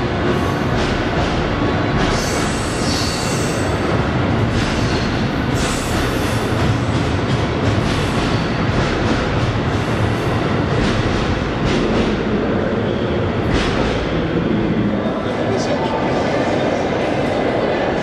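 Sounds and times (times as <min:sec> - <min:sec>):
train passing on rails: 0:00.0 - 0:18.0.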